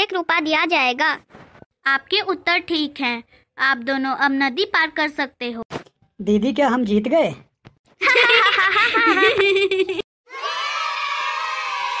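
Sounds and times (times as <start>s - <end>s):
children cheering: 10.3s - 12.0s.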